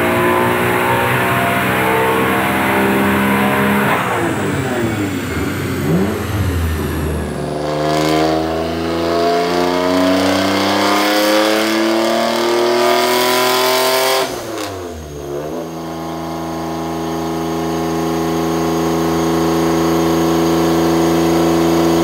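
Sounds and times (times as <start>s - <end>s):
car engine revving then idling: 0.0s - 20.5s.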